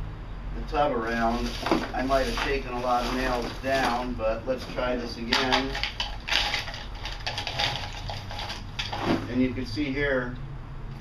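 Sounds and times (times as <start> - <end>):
biochar lumps clattering and crunching: 1.1 - 9.4.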